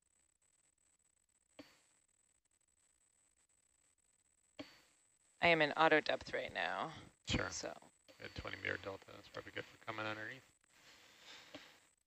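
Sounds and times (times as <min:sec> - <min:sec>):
thin high whine: 0:01.2 - 0:02.1, 0:04.6 - 0:05.2, 0:07.3 - 0:11.9.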